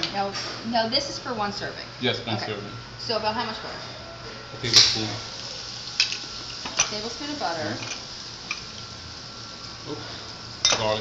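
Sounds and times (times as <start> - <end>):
butter sizzling in a frying pan: 4.6 - 11.0.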